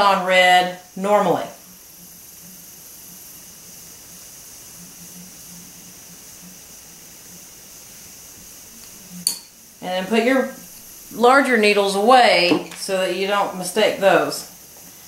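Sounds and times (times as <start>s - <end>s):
steady hiss: 0.0s - 15.0s.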